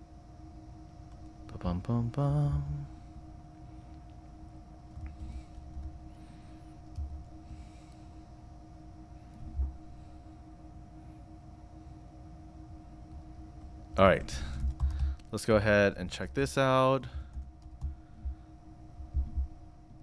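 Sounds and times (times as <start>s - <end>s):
two-tone background hum: 0.0s - 20.0s
soft low thumps: 9.4s - 9.9s, 17.3s - 20.0s.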